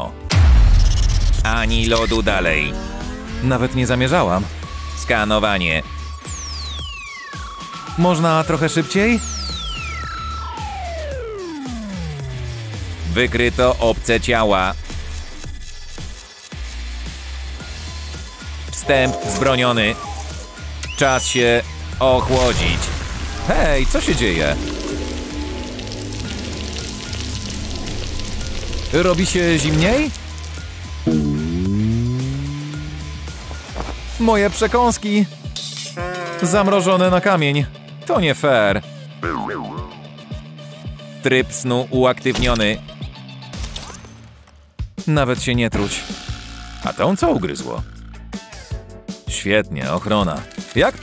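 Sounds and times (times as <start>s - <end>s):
background music: 0.0s - 15.6s, 16.6s - 51.0s
low pulsing electronic music: 0.3s - 8.0s, 18.6s - 20.8s, 30.4s - 33.7s
steady electronic tone: 18.7s - 20.6s, 31.1s - 33.4s
synthetic tone sliding down: 18.8s - 20.4s, 31.0s - 33.3s
woman whimpering: 31.1s - 33.0s.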